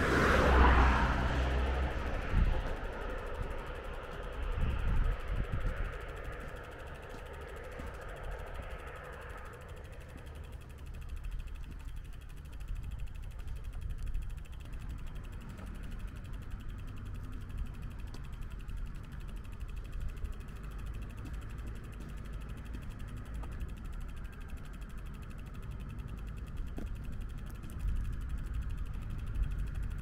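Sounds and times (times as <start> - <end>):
vehicle passing on road: 0.0 - 12.6
outdoor background: 0.0 - 30.0.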